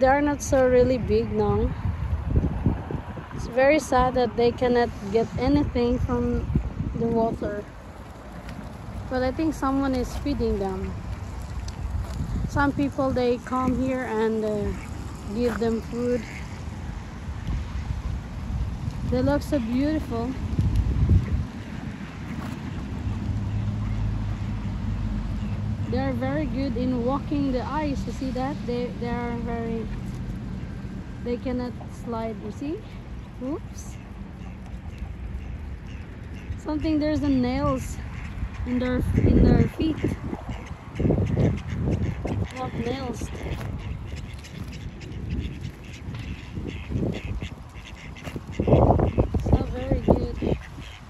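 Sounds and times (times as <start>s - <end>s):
wind rumble on microphone: 0.0s - 51.0s
ducks quacking: 12.4s - 16.7s, 30.6s - 51.0s.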